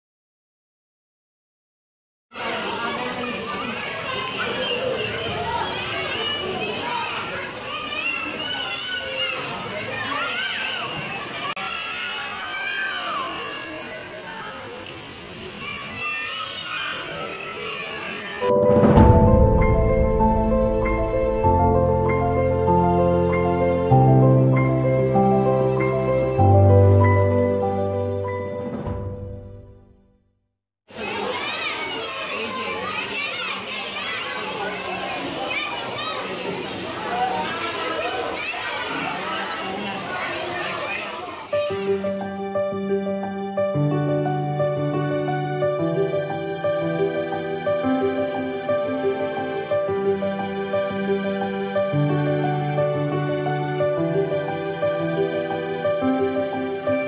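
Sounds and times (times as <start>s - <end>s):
young children calling and chattering: 2.3s - 18.5s, 20.2s - 28.6s, 30.9s - 57.0s.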